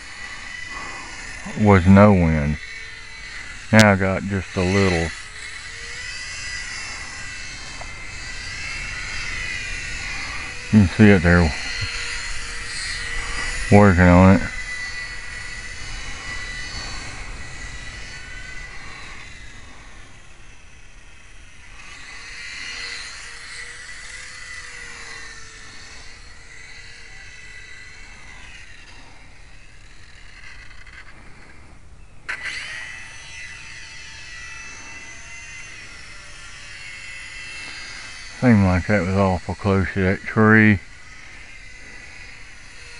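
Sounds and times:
low wind rumble on microphone: 0:00.0 - 0:23.2
model airplane motor whining: 0:00.0 - 0:42.9.

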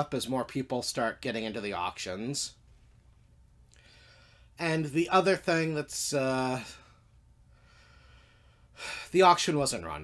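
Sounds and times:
low room hum: 0:00.0 - 0:10.0
faint breath: 0:03.7 - 0:04.6, 0:06.7 - 0:09.1
person speaking: 0:04.6 - 0:06.8.

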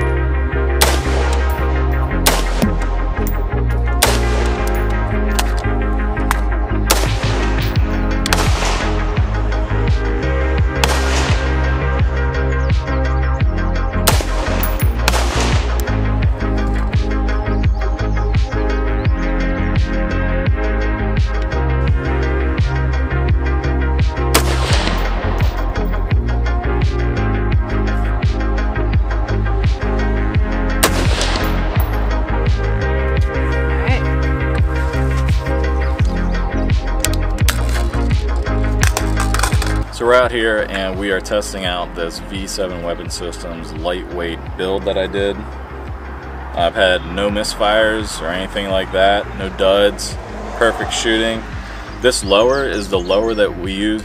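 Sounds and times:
background music with bass line: 0:00.0 - 0:54.0
rifle shots: 0:00.8 - 0:01.6, 0:02.2 - 0:02.9, 0:04.0 - 0:04.6, 0:06.9 - 0:07.5, 0:08.2 - 0:08.9, 0:10.8 - 0:11.6, 0:14.1 - 0:15.8, 0:24.3 - 0:25.7, 0:30.8 - 0:32.0.

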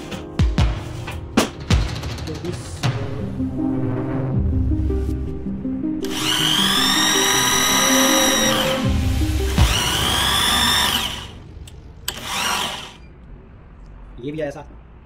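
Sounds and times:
electric drill motor whine: 0:06.0 - 0:11.4, 0:12.1 - 0:13.1.

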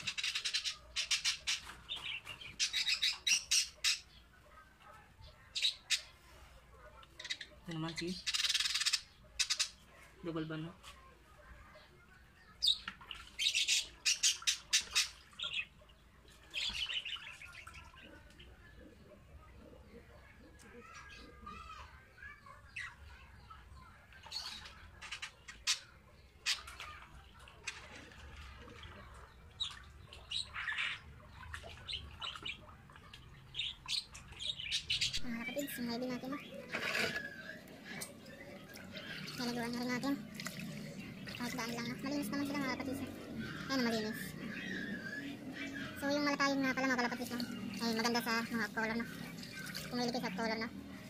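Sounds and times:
water sloshing in a plastic bucket: 0:26.4 - 0:34.6, 0:35.7 - 0:44.3, 0:45.9 - 0:51.0.

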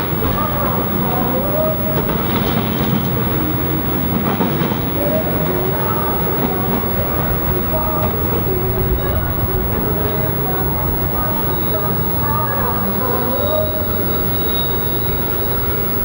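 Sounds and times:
street traffic: 0:00.0 - 0:16.0
tram wheels rumbling on rails: 0:00.0 - 0:16.0.

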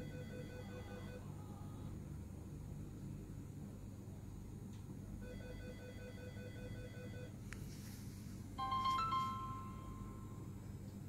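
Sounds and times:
phone startup chime: 0:08.6 - 0:10.5.

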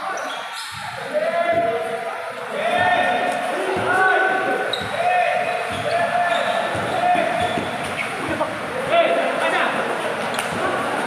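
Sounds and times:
players shouting: 0:00.0 - 0:11.0
basketball dribbling on concrete: 0:06.7 - 0:07.9.

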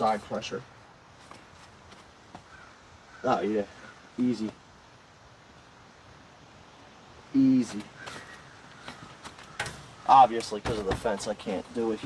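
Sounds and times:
faint rustling: 0:07.6 - 0:12.0.

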